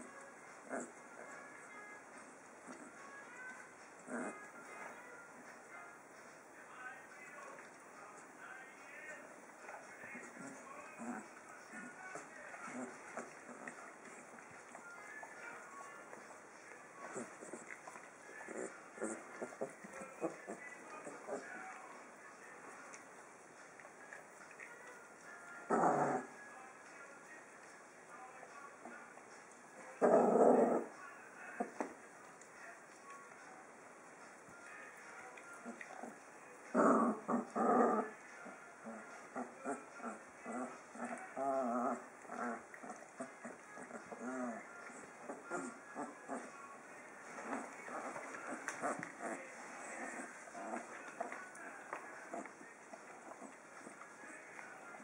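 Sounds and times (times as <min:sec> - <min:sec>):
puppy whimpering and grunting: 0:00.0 - 0:03.1, 0:04.0 - 0:04.6, 0:10.1 - 0:16.3, 0:17.0 - 0:21.8, 0:25.5 - 0:26.5, 0:30.0 - 0:31.0, 0:35.5 - 0:55.0
dogs making rough sounds: 0:00.0 - 0:06.6, 0:07.4 - 0:28.0, 0:28.7 - 0:33.0, 0:33.7 - 0:55.0
dogs grumbling: 0:00.6 - 0:01.5, 0:02.2 - 0:03.1, 0:04.0 - 0:04.6, 0:10.1 - 0:16.3, 0:17.0 - 0:21.8, 0:25.6 - 0:26.4, 0:30.0 - 0:31.0, 0:35.6 - 0:55.0.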